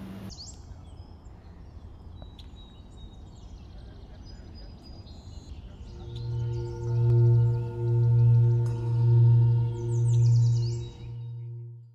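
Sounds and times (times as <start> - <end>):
singing bowl humming: 6.0 - 11.9.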